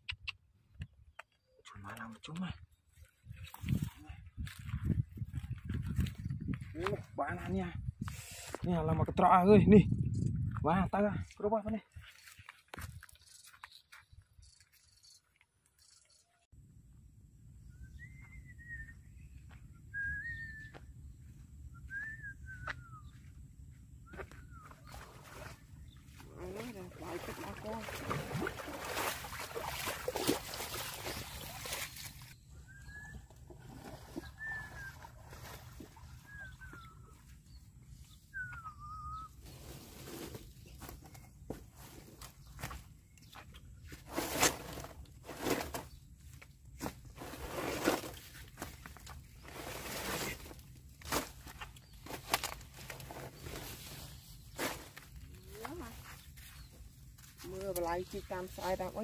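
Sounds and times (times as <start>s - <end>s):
footsteps on loose dirt: 1.0s - 8.6s, 10.4s - 15.4s, 20.6s - 26.9s, 40.0s - 44.9s, 51.2s - 58.6s
faint whistled bird call: 17.6s - 20.9s, 21.7s - 23.3s, 24.0s - 25.2s, 32.4s - 40.0s
short whistled notes: 21.7s - 23.1s, 38.3s - 39.4s.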